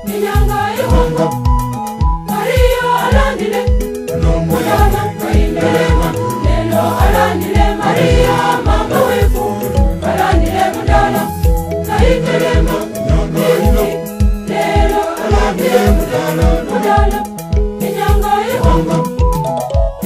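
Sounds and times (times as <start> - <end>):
choir singing: 0.0 - 1.4, 2.3 - 19.2
steady bass beat: 0.3 - 1.6, 4.1 - 14.0, 18.6 - 19.1.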